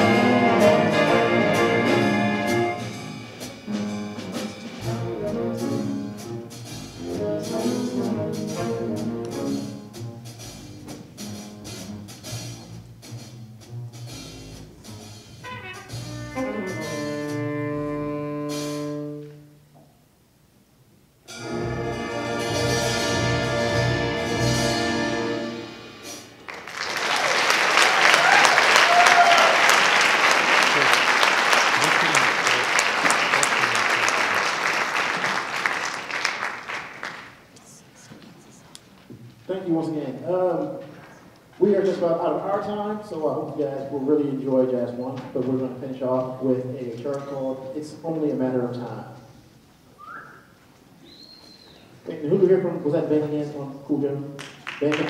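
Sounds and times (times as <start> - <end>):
jazz big band playing: 0.0 - 19.7, 21.3 - 28.1
audience applause: 26.4 - 37.5, 54.4 - 55.0.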